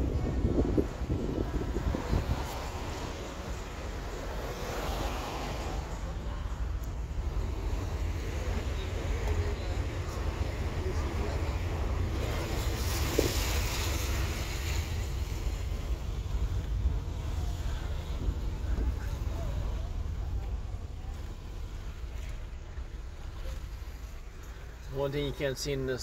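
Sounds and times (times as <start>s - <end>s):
engine and road rumble: 0.0s - 26.0s.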